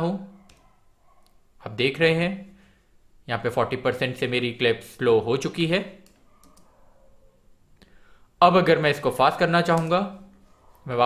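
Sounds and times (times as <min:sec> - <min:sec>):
computer mouse clicks: 0:00.4 - 0:01.4, 0:06.0 - 0:06.8.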